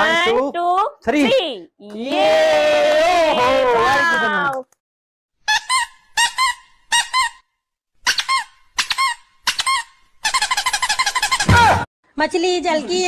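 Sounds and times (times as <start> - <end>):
high-pitched squeaks: 5.5 - 11.6.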